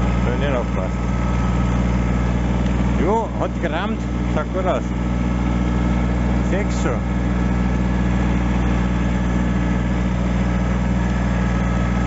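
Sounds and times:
tractor diesel engine running: 0.0s - 12.0s.

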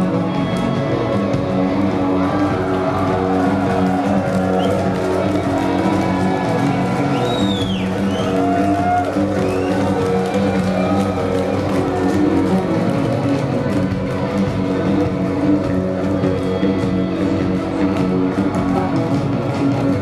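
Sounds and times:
electric guitar: 0.0s - 20.0s
live rock band playing: 0.0s - 20.0s.

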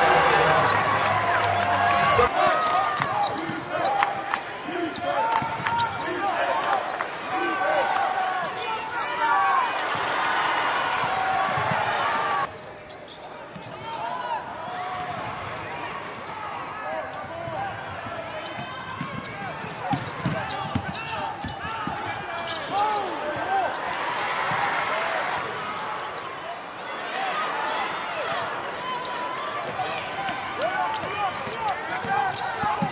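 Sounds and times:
crowd and player voices: 0.0s - 32.9s
sneaker squeaks: 11.5s - 17.4s, 18.4s - 23.0s, 30.2s - 32.9s.

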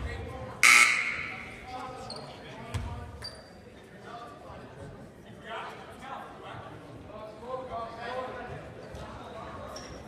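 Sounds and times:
indistinct voices talking: 0.6s - 1.8s.

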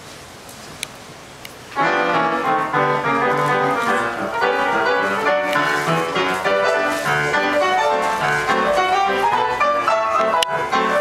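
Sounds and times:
upright piano playing ragtime: 1.8s - 11.0s.

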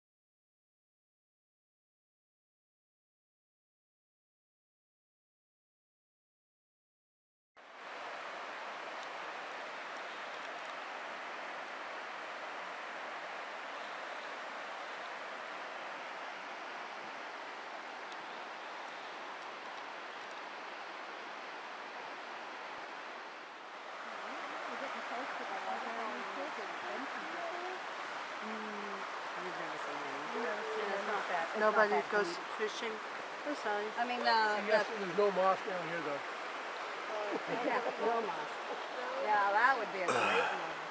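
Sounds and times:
creek water rushing: 7.6s - 40.9s
faint voices: 37.1s - 40.9s.

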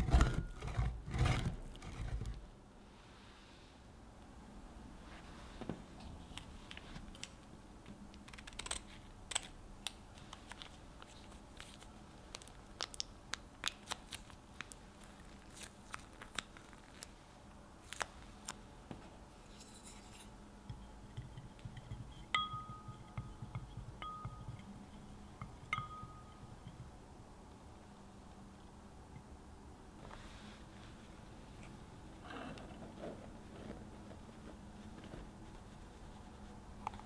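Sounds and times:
plastic sachet crinkling: 10.4s - 17.2s
soft stirring scrape: 19.4s - 22.3s
spoon clinking a glass: 22.2s - 24.7s, 25.7s - 26.5s.

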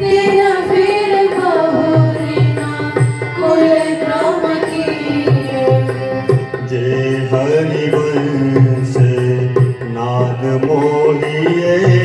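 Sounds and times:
group singing: 0.0s - 10.2s
harmonium: 0.0s - 12.0s.

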